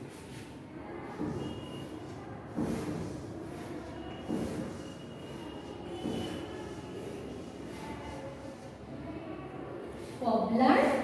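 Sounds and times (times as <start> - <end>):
steady background noise: 0.0 - 11.0
chalk scratching on blackboard: 1.2 - 8.8.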